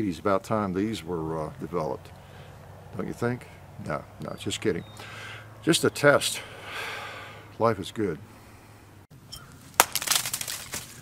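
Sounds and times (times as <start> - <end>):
man speaking: 3.0 - 4.9, 5.6 - 6.5, 7.6 - 8.2
sharp crack: 9.6 - 11.0.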